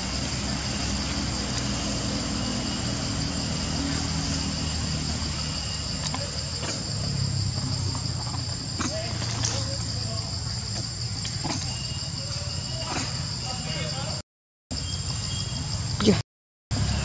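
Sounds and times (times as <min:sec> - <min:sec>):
high-pitched insect drone: 0:00.0 - 0:17.0.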